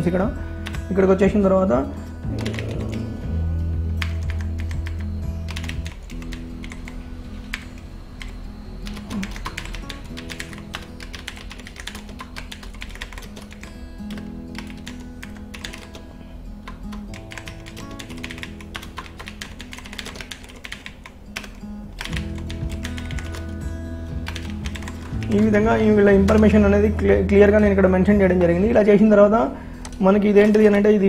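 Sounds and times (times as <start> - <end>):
background music: 0.0 - 31.0.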